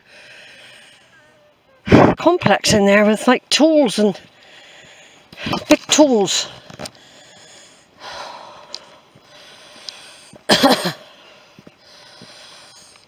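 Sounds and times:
woman breathing heavily: 0.0 - 2.2, 4.2 - 5.7, 6.6 - 13.0.

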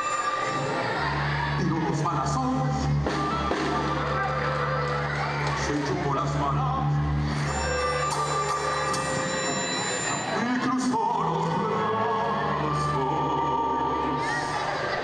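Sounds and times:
man speaking through microphone: 1.6 - 3.0, 5.6 - 7.0.

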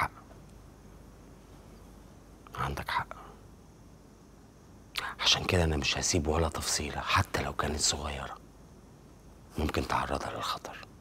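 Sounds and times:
man whispering: 0.0 - 0.3, 2.4 - 3.5, 4.9 - 8.4, 9.5 - 11.0.

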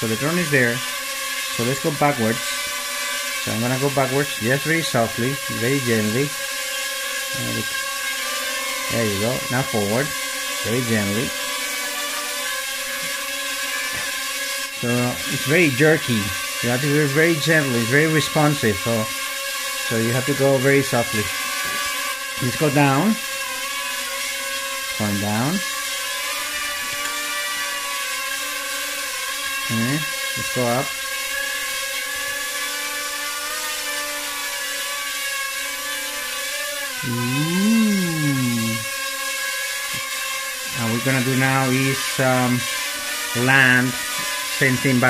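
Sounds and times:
drone propellers buzzing: 0.0 - 45.0.

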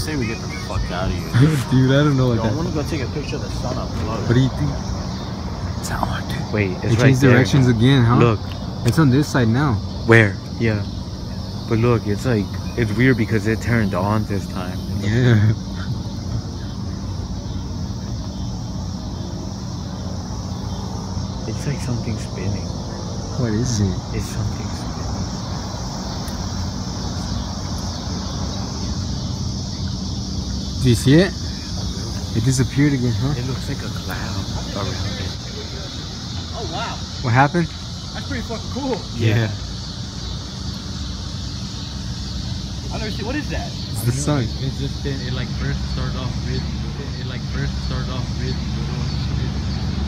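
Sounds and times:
faint engine-like hum: 0.0 - 50.0
high hiss: 0.0 - 50.0
high-pitched insect chorus: 0.0 - 50.0
low outdoor rumble: 0.0 - 50.0.

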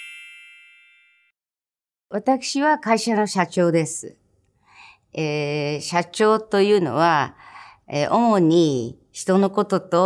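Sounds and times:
bell-like logo chime: 0.0 - 1.4.

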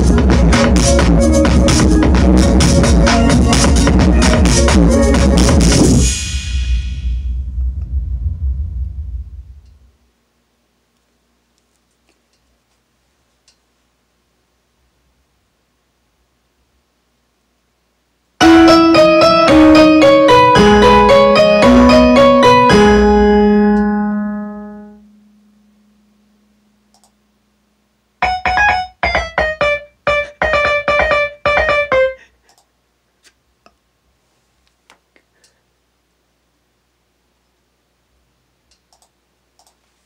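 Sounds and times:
deep heavy bass from subwoofer: 0.0 - 10.0
piano-like ringtone: 18.4 - 25.1, 28.2 - 32.2
faint click: 26.9 - 27.2, 38.7 - 39.8.

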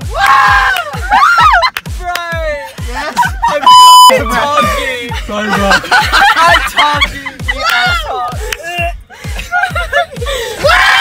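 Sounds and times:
music with thumping beat: 0.0 - 10.9
excited voices shouting: 0.1 - 1.7, 6.4 - 9.0, 10.6 - 11.0
censor bleep: 3.7 - 4.2.

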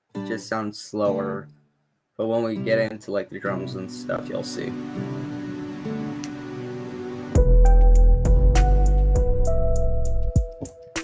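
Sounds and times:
sustained instrument notes: 4.0 - 8.5.

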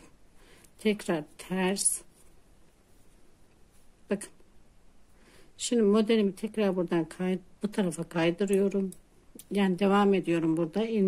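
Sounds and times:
knitting needles scratching yarn: 0.8 - 4.2.

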